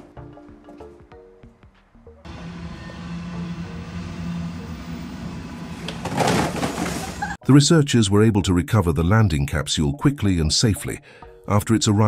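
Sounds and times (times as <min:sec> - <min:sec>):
engine humming: 0:02.3 - 0:07.4
street noise: 0:02.3 - 0:07.4
parcels falling on pavement: 0:05.9 - 0:07.2.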